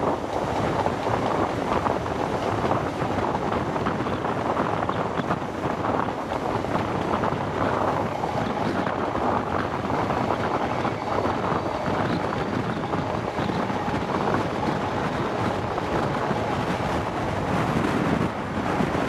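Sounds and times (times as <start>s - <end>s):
train running noise: 0.0s - 19.0s
wind buffeting microphone: 0.0s - 19.0s.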